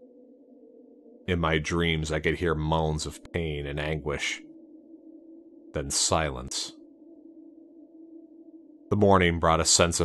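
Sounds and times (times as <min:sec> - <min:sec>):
low ambient drone: 0:00.0 - 0:10.0
man narrating: 0:01.3 - 0:04.4, 0:05.8 - 0:06.8, 0:08.9 - 0:10.0.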